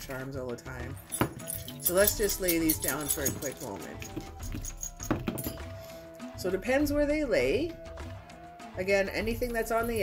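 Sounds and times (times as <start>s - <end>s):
quiet background music: 0.0s - 10.0s
metal charms clinking on paper: 1.0s - 5.6s.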